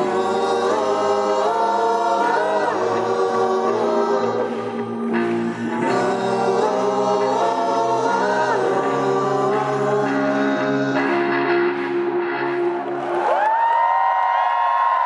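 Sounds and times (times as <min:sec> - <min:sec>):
keyboards playing chords: 0:00.0 - 0:13.3
choir-like voices: 0:00.0 - 0:15.0.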